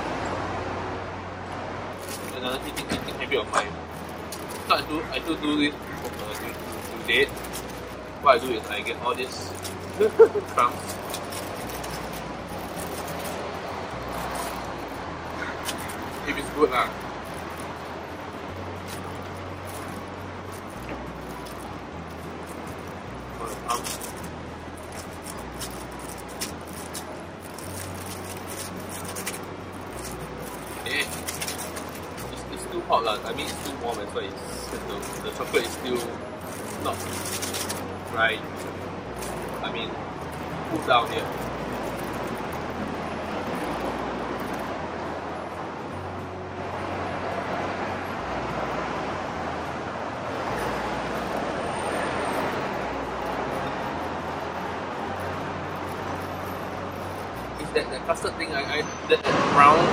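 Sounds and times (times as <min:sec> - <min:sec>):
city background hum: 0:00.0 - 0:59.9
plastic bag crinkling: 0:02.0 - 0:44.7.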